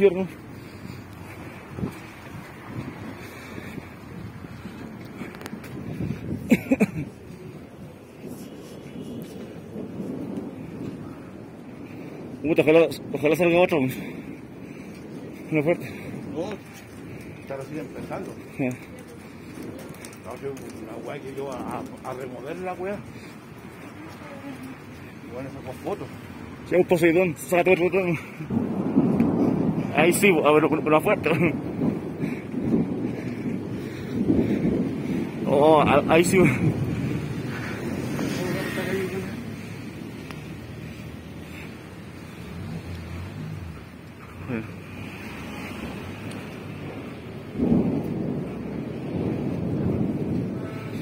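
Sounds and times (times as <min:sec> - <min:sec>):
thunder rumbling: 0:00.0 - 0:51.0
wind buffeting microphone: 0:00.0 - 0:51.0.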